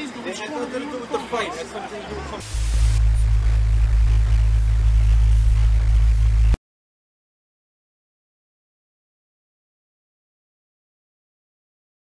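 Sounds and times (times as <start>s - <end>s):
faint hiss: 2.4s - 6.3s
low-pitched hum: 2.4s - 6.6s.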